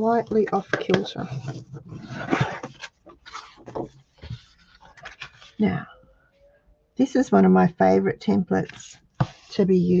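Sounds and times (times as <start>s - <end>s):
card rustling: 0.6s - 5.6s
bone folder scraping card: 0.9s - 5.5s.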